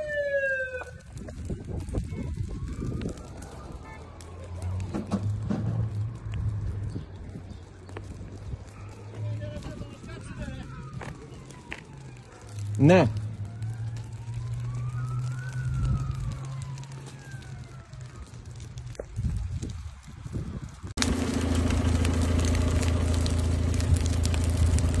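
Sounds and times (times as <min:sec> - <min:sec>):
sharp crackles: 0:00.0 - 0:25.0
footsteps on gravel: 0:10.9 - 0:11.9
steady low rumble: 0:18.7 - 0:25.0
vehicle engine humming: 0:20.8 - 0:25.0.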